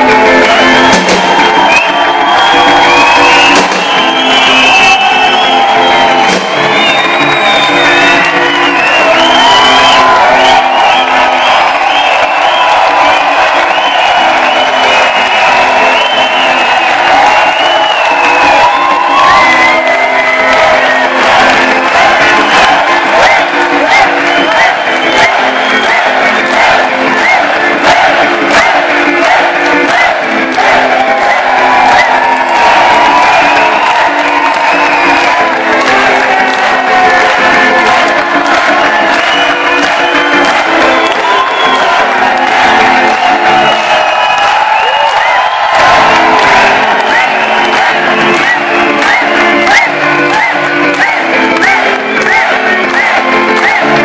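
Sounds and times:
live band with guitar and drums: 0:00.0 - 0:01.7, 0:03.2 - 0:04.8, 0:05.7 - 0:09.2
crowd cheering and whooping: 0:00.0 - 0:54.0.

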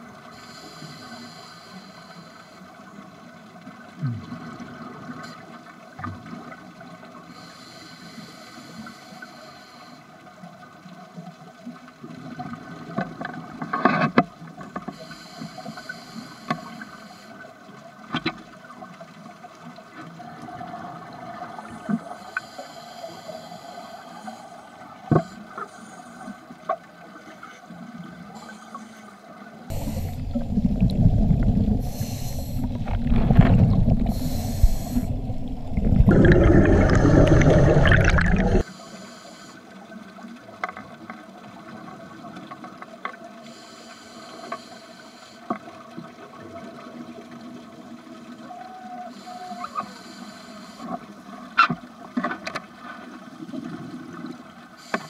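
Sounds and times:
rushing gurgling water: 0:29.3 - 0:38.7
regulator bubbles hissing: 0:29.6 - 0:39.5
steady low hum: 0:29.7 - 0:38.8.

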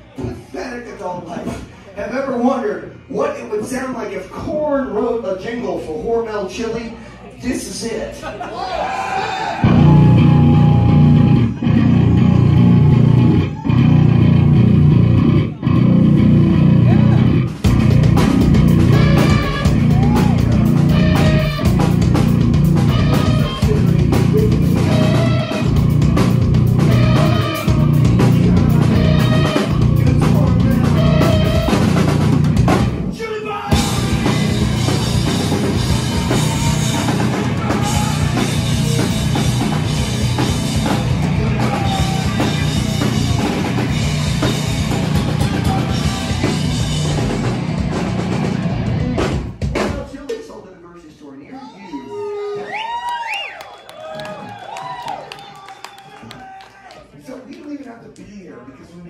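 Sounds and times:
electric guitars: 0:09.6 - 0:33.0, 0:33.8 - 0:49.4
bass guitar: 0:09.6 - 0:49.8
drum kit: 0:09.6 - 0:50.6
person singing: 0:35.9 - 0:39.1, 0:41.2 - 0:42.9, 0:45.2 - 0:46.7.

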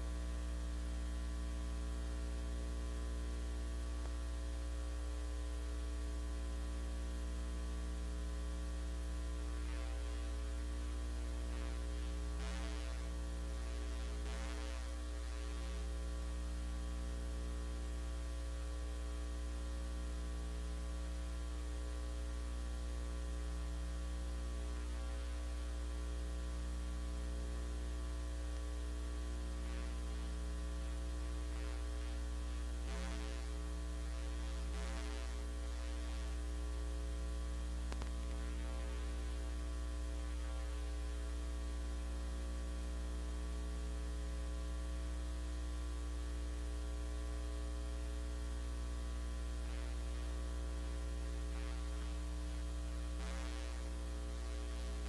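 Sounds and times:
electrical mains hum: 0:00.0 - 0:55.0.

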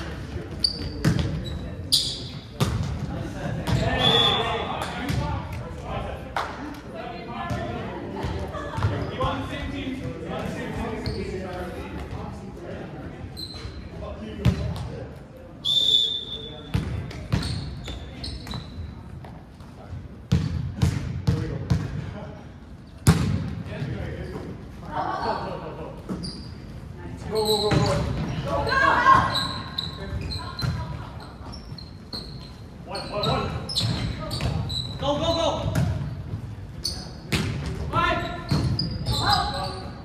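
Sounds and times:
sneaker squeaks on wooden floor: 0:00.5 - 0:02.8, 0:11.0 - 0:11.4, 0:13.4 - 0:13.8, 0:16.1 - 0:19.3, 0:26.1 - 0:26.7, 0:27.3 - 0:40.0.

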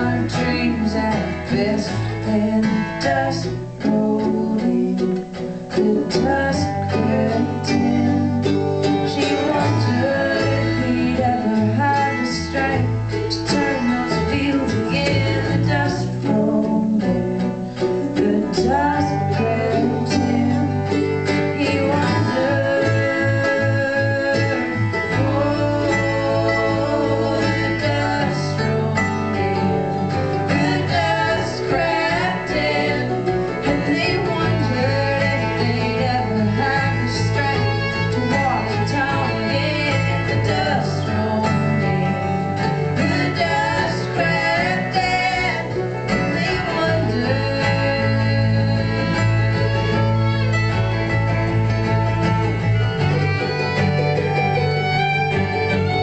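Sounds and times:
bluegrass string band playing: 0:00.0 - 0:56.0
electric bass: 0:00.0 - 0:56.0
strummed acoustic guitar: 0:00.0 - 0:56.0.

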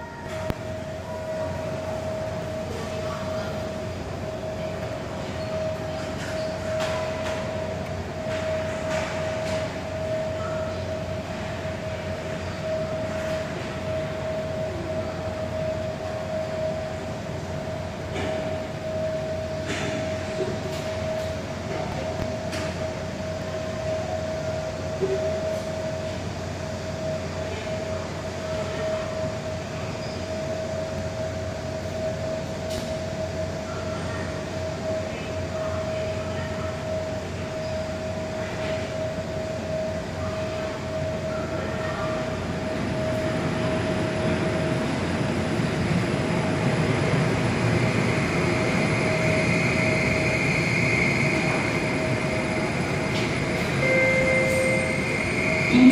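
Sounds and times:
train electric hum: 0:00.0 - 0:55.9
high whine: 0:47.4 - 0:55.9
short electronic tone: 0:53.8 - 0:55.9.

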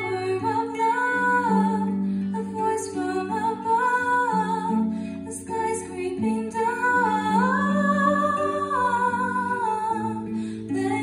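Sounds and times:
harp: 0:00.0 - 0:11.0
woman singing wordless notes: 0:00.0 - 0:11.0.

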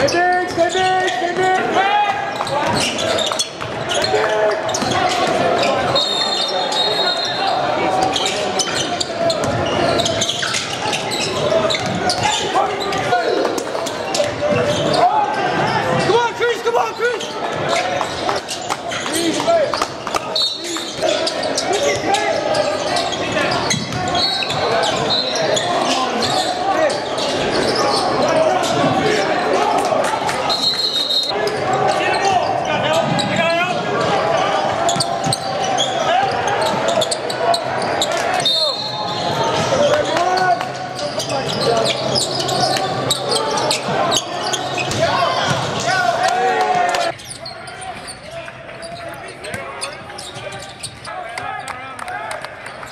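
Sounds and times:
sneakers squeaking: 0:00.0 - 0:51.9
basketball bouncing: 0:44.8 - 0:45.8.

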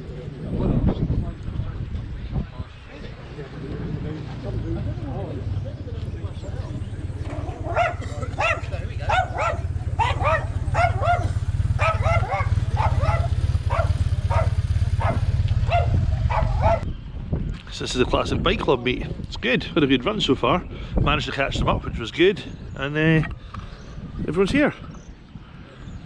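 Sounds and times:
steady low rumble: 0:03.9 - 0:17.4
small dog yapping: 0:07.4 - 0:16.8.

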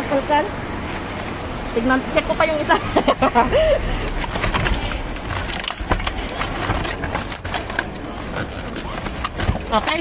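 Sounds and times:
plastic containers and cardboard clattering: 0:04.0 - 0:10.0.

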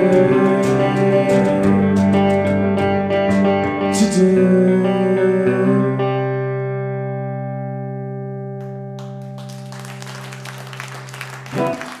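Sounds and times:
electric guitar chord ringing: 0:00.0 - 0:09.5.

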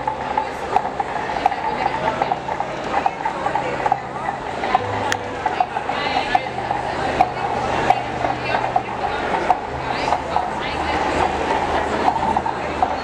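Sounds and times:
murmur of voices: 0:00.0 - 0:13.0
rhythmic clacking: 0:00.0 - 0:13.0.

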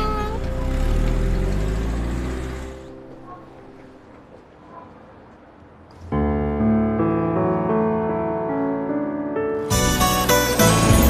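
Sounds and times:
car engine rumbling: 0:00.0 - 0:05.8.

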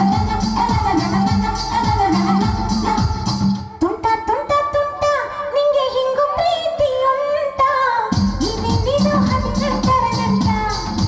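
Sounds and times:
deep bass beat: 0:00.0 - 0:03.6, 0:08.1 - 0:11.0.

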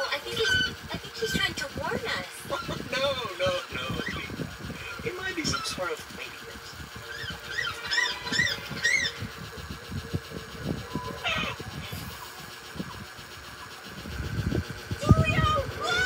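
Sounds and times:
cartoon bird chirping: 0:00.0 - 0:06.0, 0:06.8 - 0:16.0
cartoon bird squawk: 0:00.2 - 0:00.8, 0:03.9 - 0:04.3, 0:07.0 - 0:09.3, 0:10.9 - 0:12.0
low knocks and rumble: 0:08.4 - 0:16.0.

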